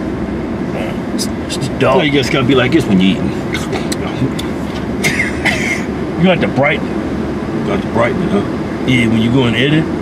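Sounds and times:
air-conditioning fan: 0:00.0 - 0:10.0
car idling rumble: 0:00.0 - 0:10.0
person laughing: 0:05.0 - 0:05.9.

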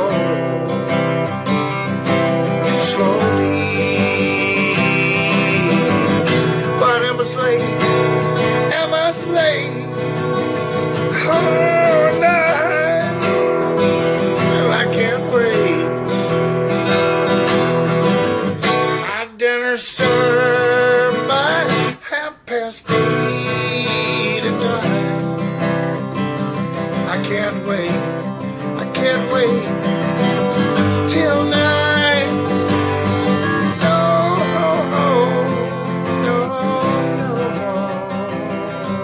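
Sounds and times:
acoustic guitar strumming: 0:00.0 - 0:39.0
man singing: 0:00.0 - 0:39.0.

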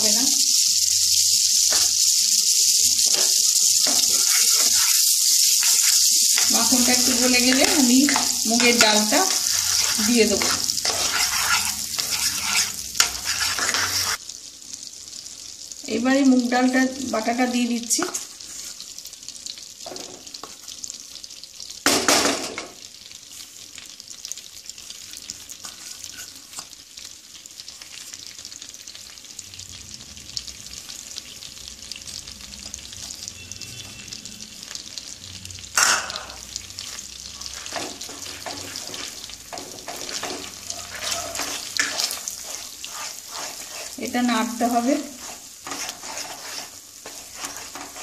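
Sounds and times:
paste sizzling in butter: 0:00.0 - 0:48.0
wooden spatula scraping: 0:03.0 - 0:14.2, 0:18.0 - 0:18.8, 0:25.1 - 0:26.7, 0:36.8 - 0:48.0.

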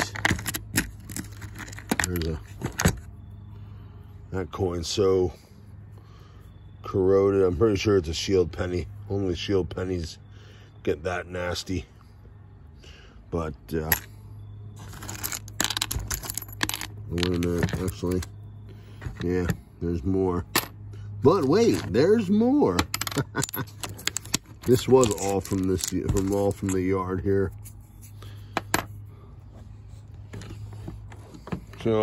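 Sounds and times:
coins clicking against plastic: 0:00.0 - 0:03.0, 0:14.8 - 0:18.3, 0:22.7 - 0:26.9.

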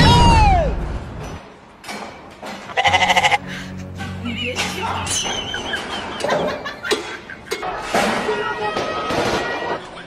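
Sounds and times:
quavering sheep-like bleat: 0:02.8 - 0:03.4
low background music: 0:02.8 - 0:06.7.

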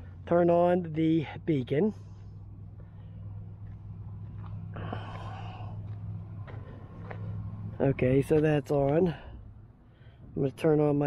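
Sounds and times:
low hum: 0:01.9 - 0:07.9
breathy exhale: 0:04.8 - 0:05.8.

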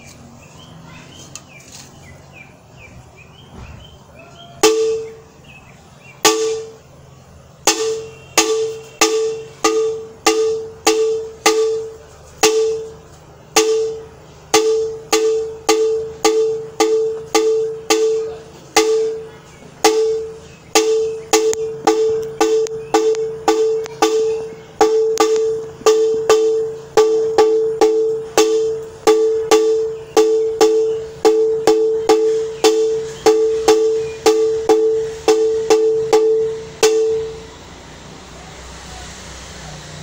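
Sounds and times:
hand-held gong struck: 0:04.6 - 0:05.3, 0:06.2 - 0:06.9, 0:07.6 - 0:37.7.

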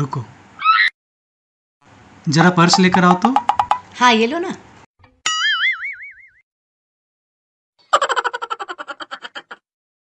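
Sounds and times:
cartoon boing sound effect: 0:05.3 - 0:06.4.

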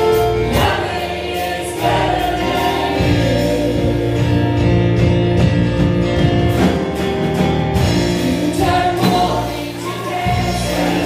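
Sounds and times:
group of singers: 0:00.0 - 0:05.2, 0:07.8 - 0:11.0
guitar: 0:00.0 - 0:11.0
keyboard: 0:00.0 - 0:11.0.

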